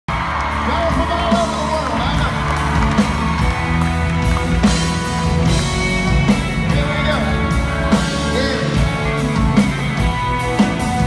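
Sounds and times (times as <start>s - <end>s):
live country band playing: 0.1s - 11.0s.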